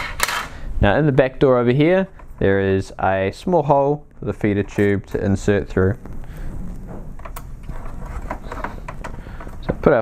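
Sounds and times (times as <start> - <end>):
soft plastic clicks and rustles: 4.1 - 10.0.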